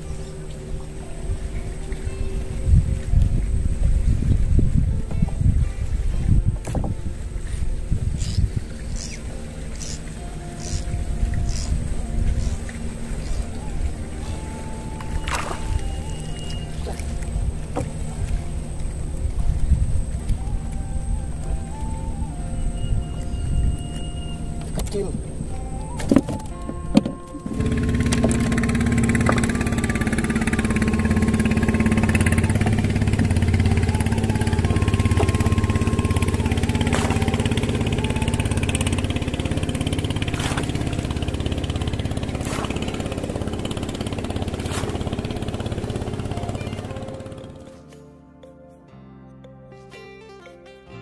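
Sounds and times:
small boat engine running: 0:00.0 - 0:47.9.

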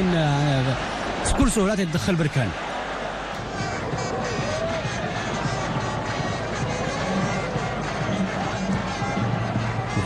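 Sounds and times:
stadium crowd din: 0:00.0 - 0:10.0
faint crowd chanting: 0:02.6 - 0:10.0.

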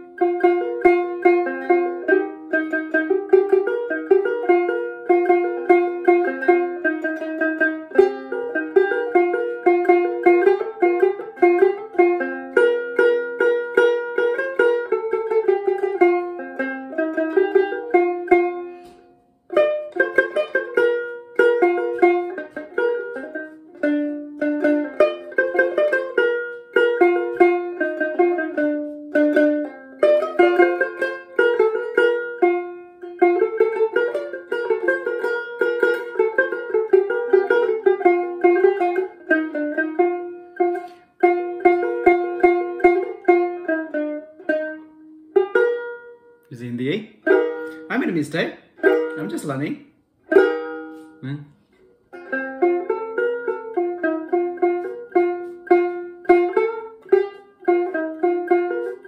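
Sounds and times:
plucked lute melody: 0:00.0 - 0:59.0.

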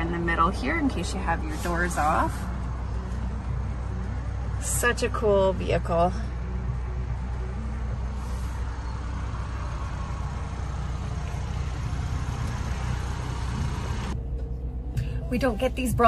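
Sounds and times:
vehicle idling low rumble: 0:00.0 - 0:16.0.

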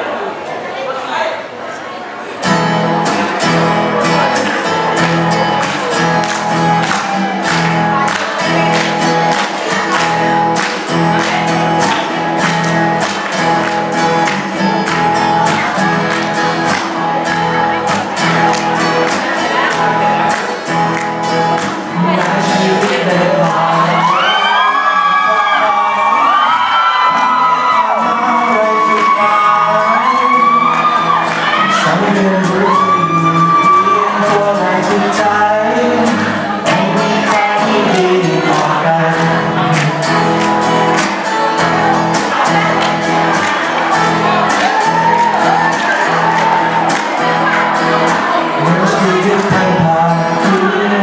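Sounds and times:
guitars strumming chords: 0:02.3 - 0:51.0
bending melody line: 0:02.5 - 0:24.7.

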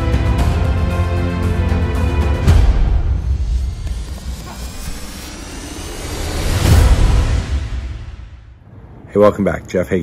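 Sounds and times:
rising whoosh: 0:03.1 - 0:08.6.

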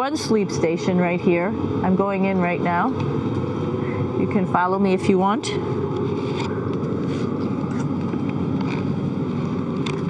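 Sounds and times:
ventilation fans humming: 0:00.0 - 0:10.0.

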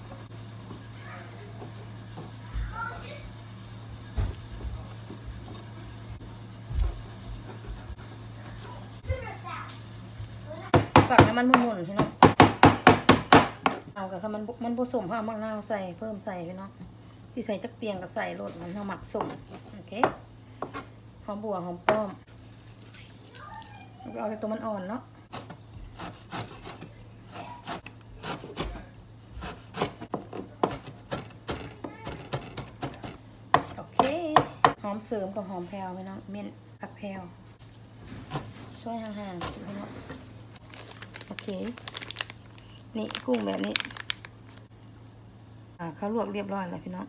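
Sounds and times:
steady low hum: 0:00.0 - 0:47.0
knife chopping on plastic board: 0:10.7 - 0:13.8, 0:29.4 - 0:34.8
child talking faintly: 0:22.9 - 0:24.4.

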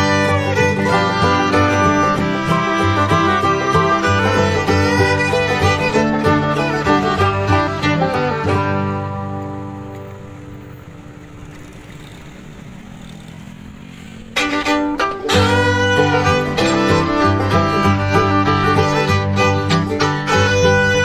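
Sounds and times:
instrumental background music: 0:00.0 - 0:11.3, 0:14.4 - 0:21.0.

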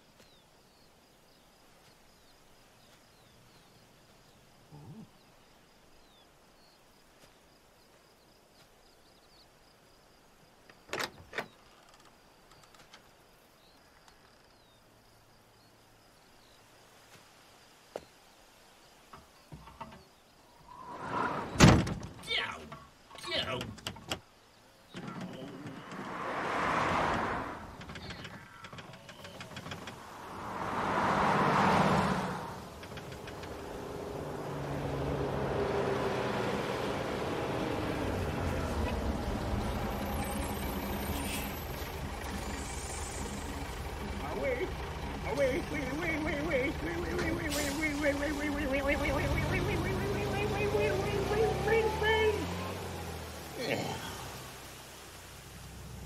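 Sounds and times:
voices calling out: 0:19.6 - 0:23.9, 0:24.9 - 0:54.7
vehicles passing: 0:20.5 - 0:23.6, 0:24.8 - 0:56.0
bus engine running: 0:25.0 - 0:54.6.

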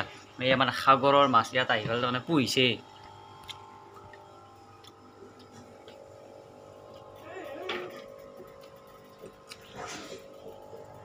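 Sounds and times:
aquarium air pump humming: 0:00.0 - 0:11.0.

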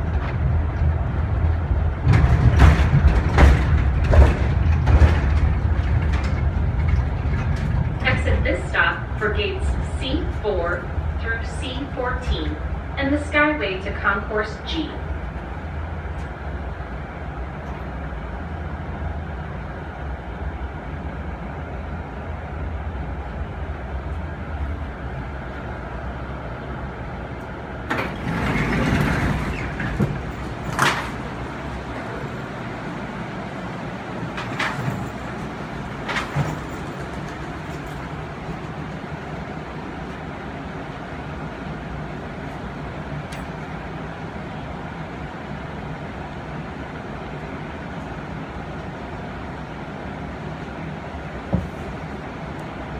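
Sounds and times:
sliding doors opening: 0:00.0 - 0:20.2, 0:24.0 - 0:52.9
stopped tram car hum: 0:00.0 - 0:52.9
tram car rolling rumble: 0:00.0 - 0:52.9.

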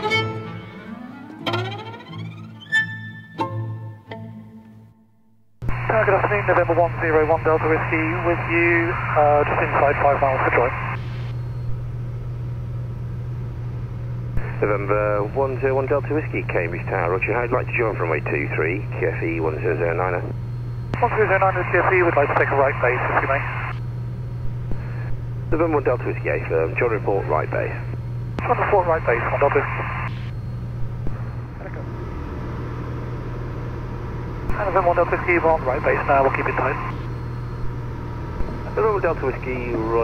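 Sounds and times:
aircraft piston engine drone: 0:05.7 - 0:40.0
aircraft engine and propeller drone: 0:30.3 - 0:40.0.

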